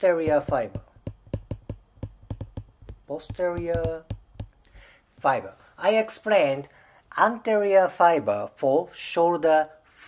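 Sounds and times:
stylus tapping on glass screen: 0:00.2 - 0:04.7.

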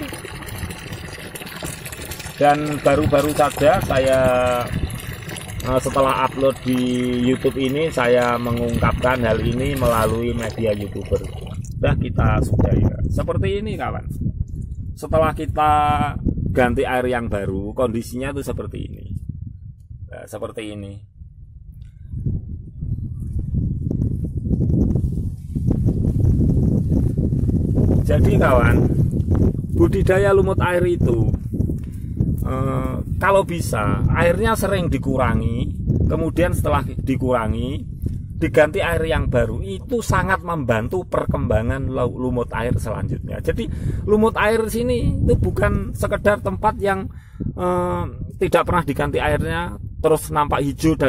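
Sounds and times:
tap water pouring into tub: 0:00.0 - 0:11.8
wind buffeting microphone: 0:00.0 - 0:51.0.

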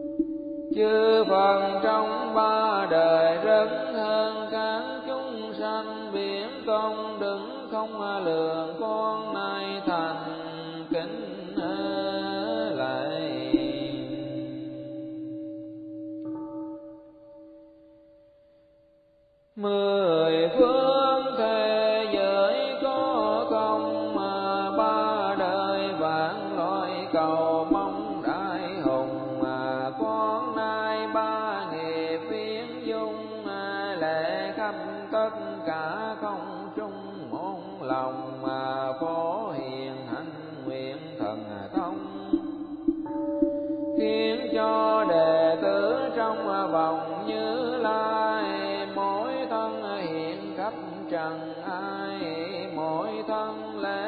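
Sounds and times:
steady sustained tone: 0:00.0 - 0:06.3, 0:09.6 - 0:19.2, 0:22.5 - 0:51.2.

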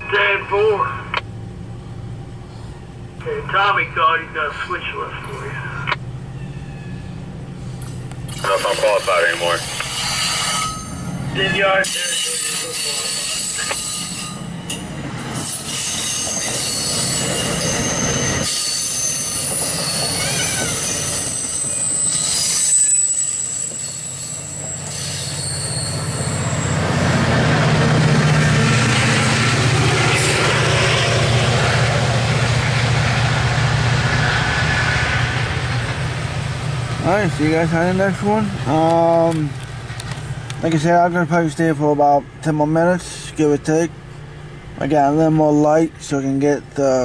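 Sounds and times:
steady low hum: 0:00.0 - 0:11.6
rumble of train cars: 0:00.0 - 0:47.0
train wheels squealing: 0:07.8 - 0:27.0.

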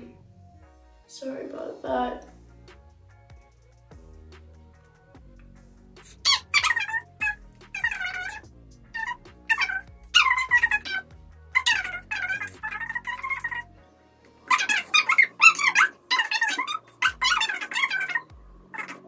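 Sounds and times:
background music: 0:00.0 - 0:19.0
sped up squeaky girl's voice: 0:06.1 - 0:13.7, 0:14.5 - 0:19.0.

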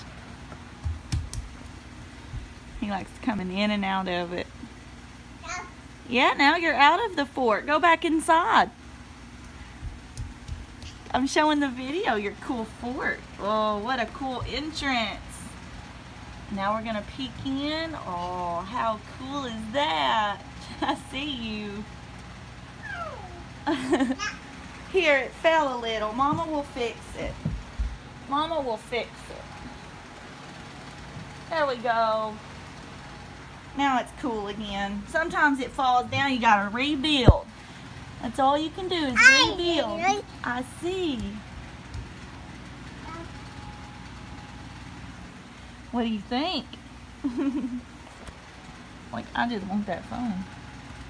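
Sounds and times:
soft low thumps: 0:09.7 - 0:10.9.

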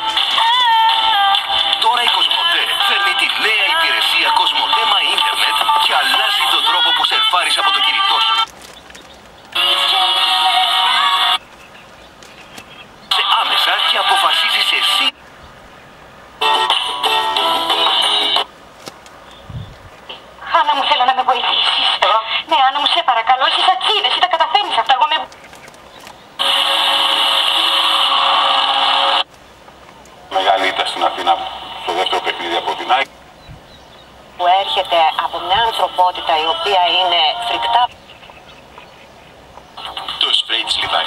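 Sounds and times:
music with singing on television: 0:00.0 - 0:08.5, 0:09.6 - 0:11.4, 0:16.4 - 0:18.5
loud static hiss from tv speaker: 0:00.0 - 0:41.0.

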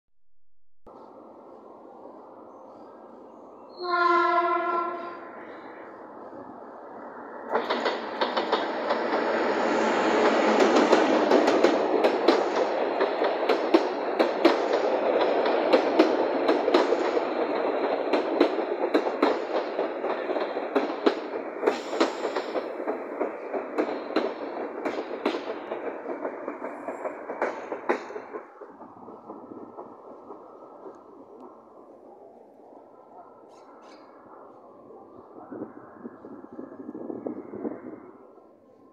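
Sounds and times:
diesel train passing: 0:00.9 - 0:38.9
train horn blast: 0:03.8 - 0:05.3
wheels clattering over rail joints: 0:07.5 - 0:31.7.

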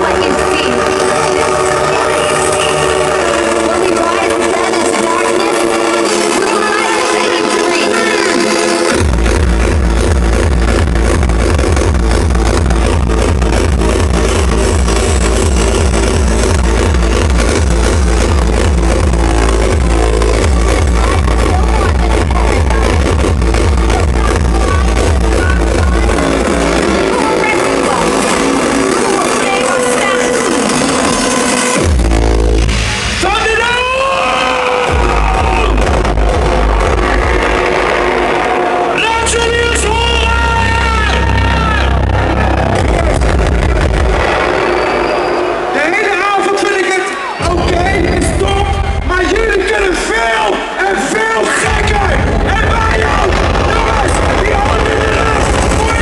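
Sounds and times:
hardcore techno music: 0:00.0 - 0:56.0
heavy kick drum beat: 0:08.9 - 0:27.4, 0:51.6 - 0:56.0.

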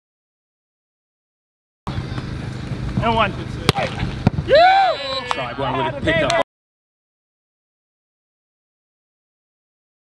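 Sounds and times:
low outdoor rumble: 0:01.9 - 0:06.4.

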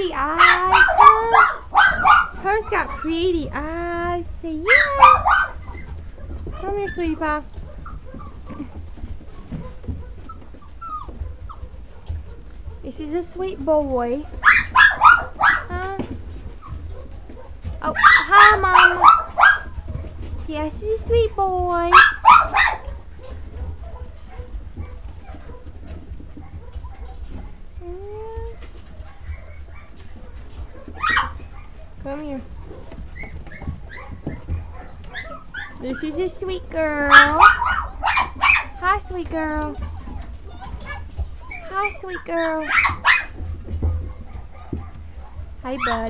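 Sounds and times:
puppies whimpering: 0:00.0 - 0:46.0
faint puppy whimpers: 0:07.7 - 0:12.9, 0:23.2 - 0:30.0, 0:32.5 - 0:43.0
puppy rising whine: 0:10.2 - 0:11.8.

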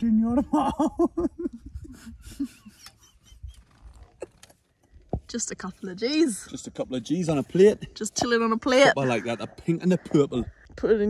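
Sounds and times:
people laughing breathlessly: 0:00.5 - 0:03.6.

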